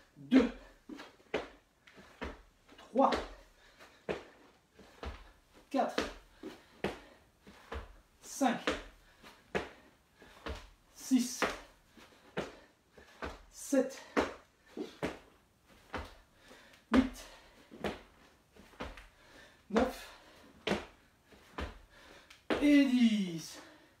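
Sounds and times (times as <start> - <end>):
hands and feet thudding on wooden floor: 12.3 - 22.8.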